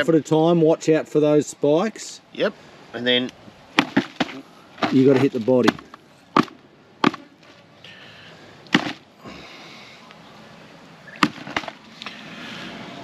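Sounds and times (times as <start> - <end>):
crabs being whacked: 3.8 - 5.0, 5.6 - 7.3, 8.7 - 9.0, 11.1 - 11.8.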